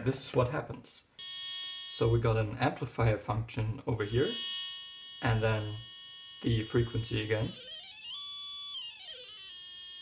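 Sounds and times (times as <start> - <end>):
faint steady tone: 1.0 - 10.0
electronic tone gliding down: 4.3 - 10.0.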